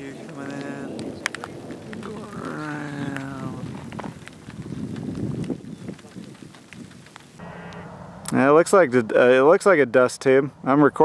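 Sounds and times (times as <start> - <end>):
muffled talk: 0.0 - 3.8
wind rushing: 0.0 - 8.9
sharp ticks: 3.9 - 8.4.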